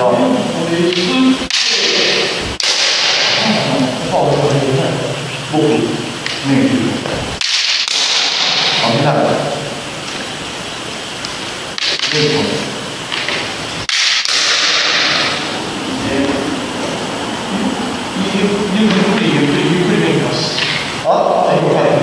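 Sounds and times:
man talking: 0.0s - 2.4s, 3.3s - 7.1s, 8.8s - 9.8s, 12.0s - 12.8s, 15.9s - 16.7s, 17.5s - 22.0s
bamboo sword knocks: 0.9s - 3.4s, 7.0s - 8.8s.

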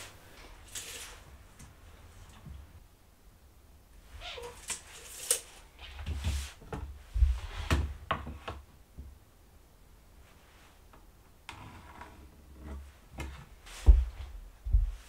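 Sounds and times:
tape measure swishing: 0.7s - 1.2s
board knocking and thudding: 13.8s - 15.0s.

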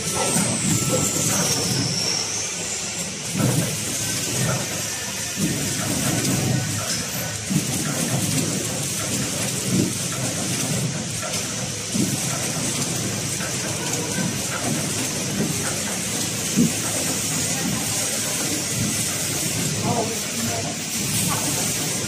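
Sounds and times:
packaging machine whirring: 0.0s - 22.0s.

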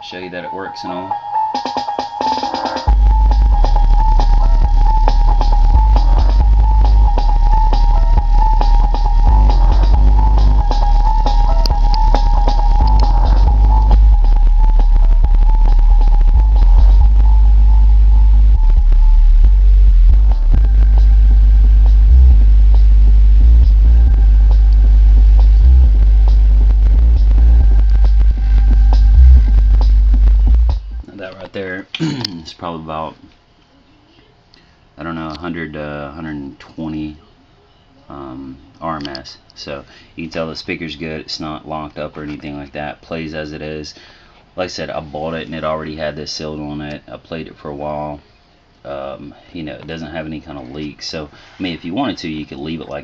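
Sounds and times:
bass-heavy music from subwoofer: 0.7s - 31.1s.

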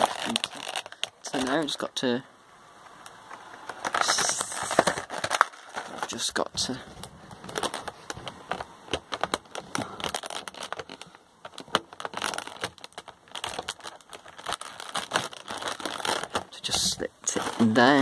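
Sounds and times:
plastic packaging crinkling: 0.0s - 2.0s, 2.9s - 18.0s.

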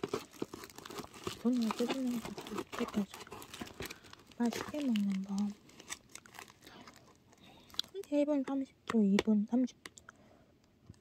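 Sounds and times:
plastic wrap crinkling: 0.0s - 8.6s.

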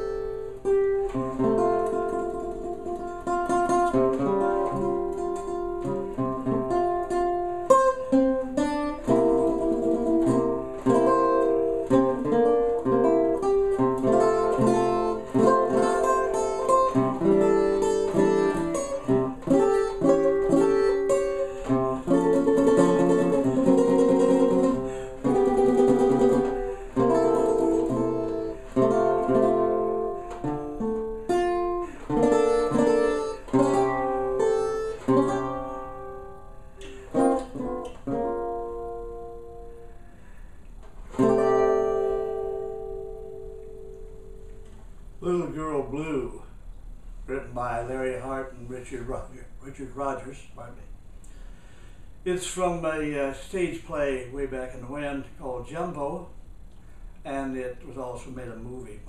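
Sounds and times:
banjo strummed chords: 0.0s - 40.3s, 41.0s - 45.4s.

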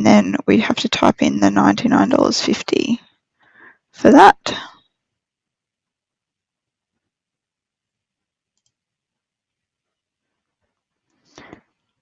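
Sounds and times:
computer mouse clicks: 8.5s - 8.8s.

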